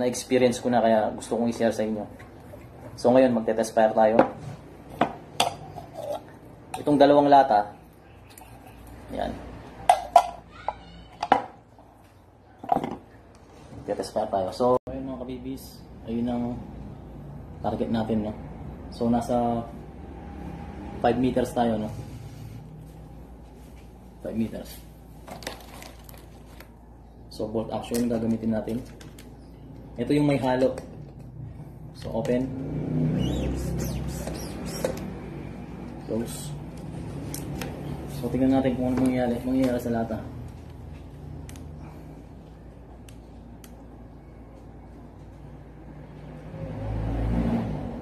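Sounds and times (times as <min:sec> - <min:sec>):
high chirps: 0:33.1 - 0:35.0.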